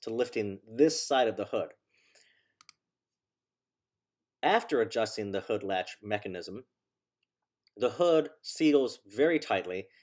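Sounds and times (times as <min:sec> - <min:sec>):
computer mouse clicks: 0:02.6 - 0:02.8.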